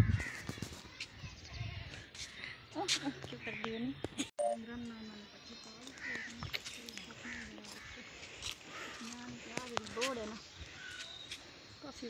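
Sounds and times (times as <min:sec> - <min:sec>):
faint voices talking: 0:00.2 - 0:12.0.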